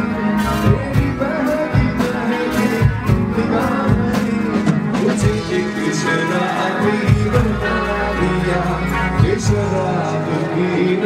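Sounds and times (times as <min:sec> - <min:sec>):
drums: 0:00.0 - 0:11.0
guitar: 0:00.0 - 0:11.0.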